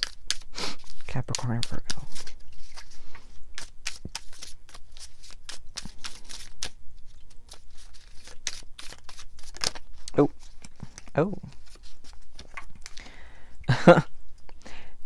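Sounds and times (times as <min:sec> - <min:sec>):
cards being shuffled: 0:00.0 - 0:13.0.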